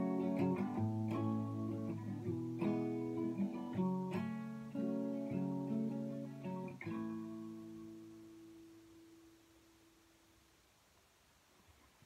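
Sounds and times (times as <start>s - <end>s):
acoustic guitar chord ringing: 0.0s - 9.9s.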